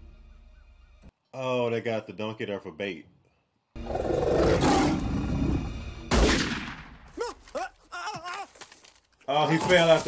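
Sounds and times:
lion roaring: 3.8s - 5.6s
loud rifle shot: 6.1s - 7.0s.

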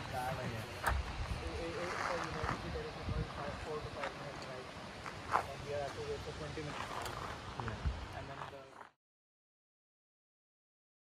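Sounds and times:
wind rumbling on microphone: 0.0s - 4.1s, 6.8s - 8.3s
people talking: 0.0s - 4.7s, 5.4s - 7.0s, 7.6s - 8.8s.

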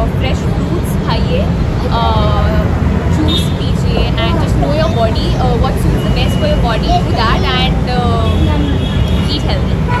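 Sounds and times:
steady low street rumble: 0.0s - 10.0s.

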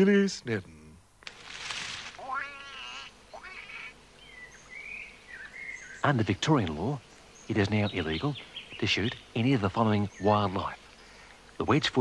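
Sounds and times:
small birds chirping: 0.6s - 12.0s
bird wings flapping: 1.2s - 2.8s
duck quacking: 2.2s - 4.0s.

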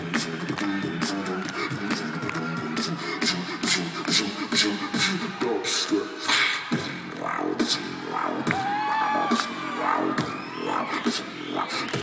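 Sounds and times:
beatboxing percussive hits: 0.0s - 12.0s.

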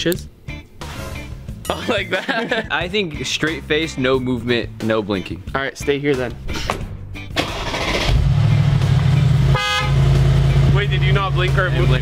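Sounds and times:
car engine starting: 7.2s - 12.0s.

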